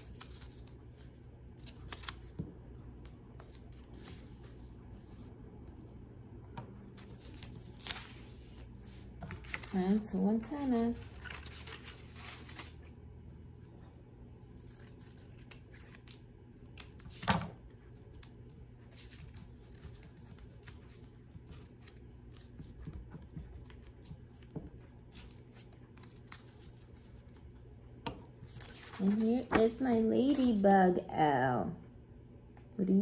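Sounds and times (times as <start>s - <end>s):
paper rustling: 0.0s - 2.4s, 7.0s - 10.1s, 10.9s - 13.0s, 28.4s - 30.6s.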